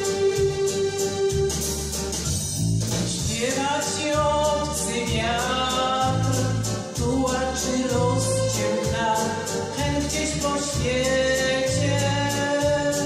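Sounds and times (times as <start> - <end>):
instrumental accompaniment with bass: 0.0 - 13.0.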